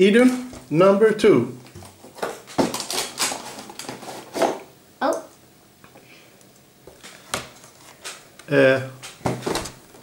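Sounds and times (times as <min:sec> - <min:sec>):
packaging rustling and clicking: 0:01.8 - 0:04.6.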